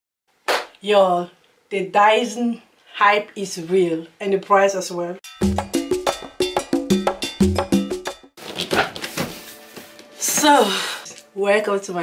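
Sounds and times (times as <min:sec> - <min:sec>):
struck percussion notes: 0:05.2 - 0:08.4.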